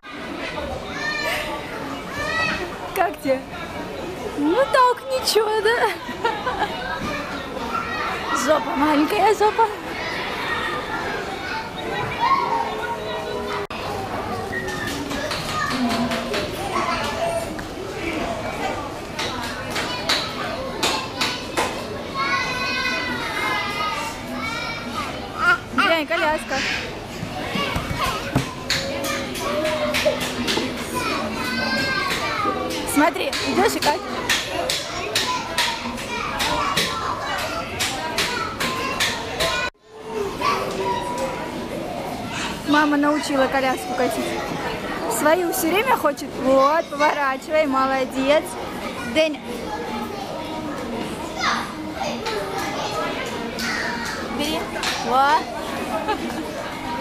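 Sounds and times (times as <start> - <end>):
chatter of children and adults: 0.0 - 57.0.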